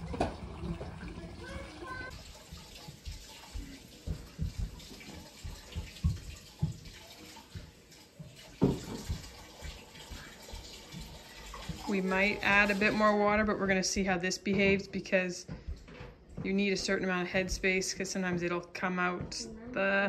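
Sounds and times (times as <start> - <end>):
tap water running into sink: 0.0 - 19.4
knocks of things in sink: 8.5 - 9.8.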